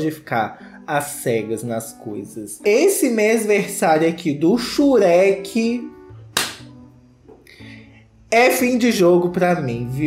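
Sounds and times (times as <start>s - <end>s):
faint background music: 0.0s - 10.0s
sharp slap-like snap: 6.4s - 6.8s.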